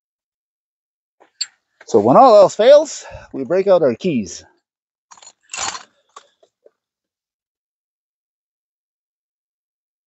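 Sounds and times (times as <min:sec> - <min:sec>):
keys rustling: 0:05.1 - 0:06.4.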